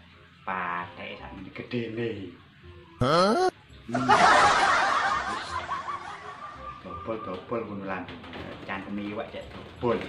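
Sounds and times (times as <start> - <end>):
burst of laughter: 3.0 - 7.4.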